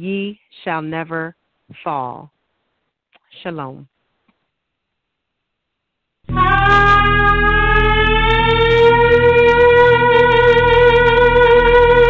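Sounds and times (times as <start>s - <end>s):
shofar long held note: 6.3s - 12.0s.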